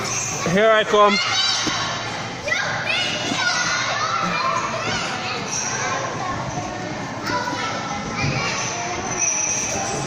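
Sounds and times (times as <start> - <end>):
children shouting at play: 0.0 - 10.0.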